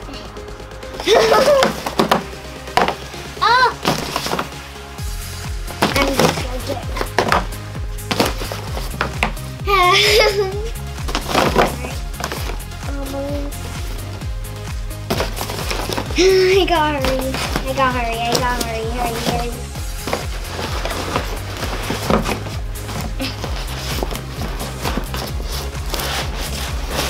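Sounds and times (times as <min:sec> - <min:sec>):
upbeat background music: 0:00.0 - 0:27.0
girl squealing and laughing: 0:01.0 - 0:01.8, 0:09.6 - 0:10.8
cardboard boxes bumping: 0:01.1 - 0:03.1, 0:05.8 - 0:09.4, 0:11.1 - 0:12.6, 0:15.0 - 0:16.2, 0:17.0 - 0:27.0.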